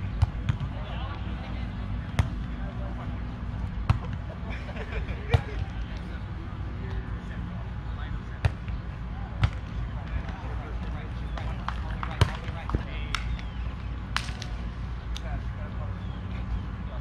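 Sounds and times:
distant players' voices: 0.0 - 17.0
hands slapping volleyball: 11.2 - 15.3.

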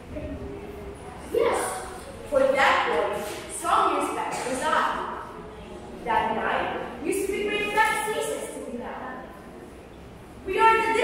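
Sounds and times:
child speaking: 1.0 - 5.4, 6.0 - 9.3, 10.5 - 11.0.

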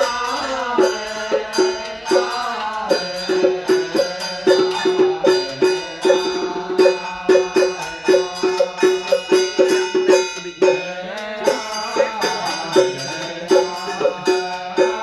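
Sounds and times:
light percussion: 0.0 - 15.0.

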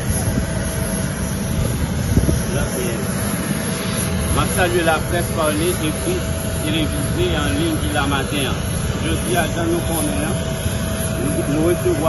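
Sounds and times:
jet airliner whine: 0.0 - 12.0
wind buffeting microphone: 0.0 - 12.0.

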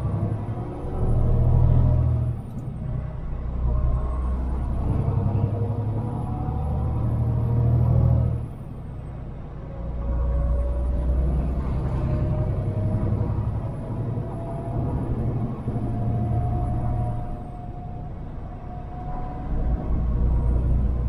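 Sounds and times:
diesel truck engine under load: 10.8 - 18.8.

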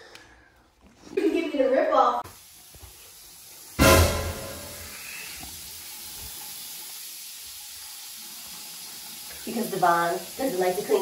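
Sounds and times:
faucet running into sink: 2.3 - 11.0.

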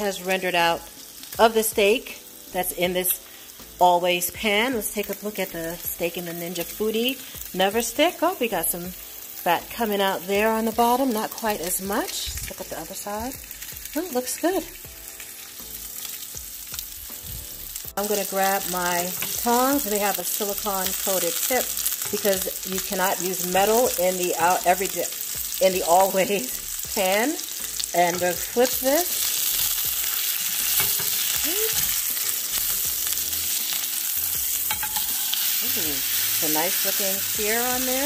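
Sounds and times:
steak sizzling in a pan: 0.0 - 38.0
steak turned with tongs: 18.0 - 37.9.

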